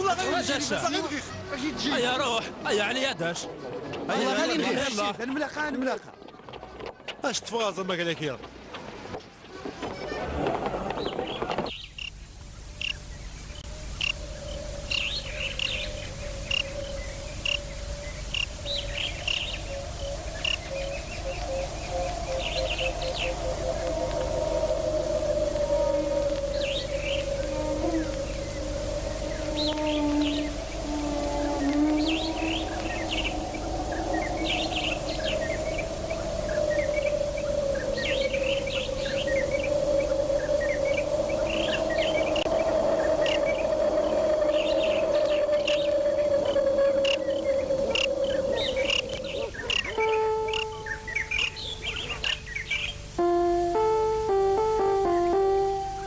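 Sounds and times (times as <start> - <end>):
birds chirping: 10.9 - 56.0
held musical tone: 19.8 - 52.1, 53.0 - 56.0.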